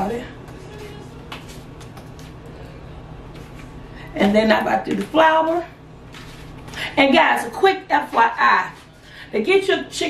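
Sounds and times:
low room hum: 0:00.0 - 0:10.0
soft pats and rustles: 0:00.4 - 0:02.4.

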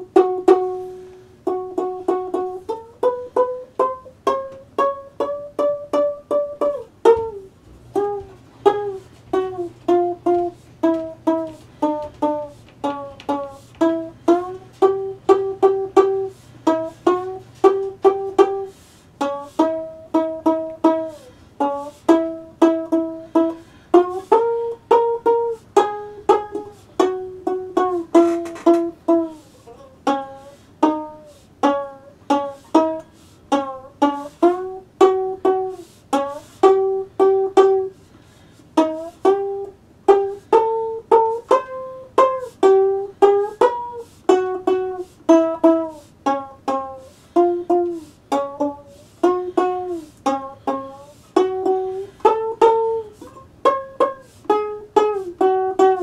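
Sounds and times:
one-string diddley bow plucked: 0:00.0 - 0:38.1, 0:38.7 - 0:56.0.

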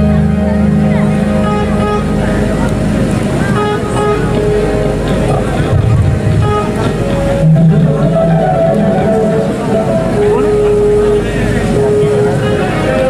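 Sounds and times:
held keyboard notes: 0:00.0 - 0:13.0.

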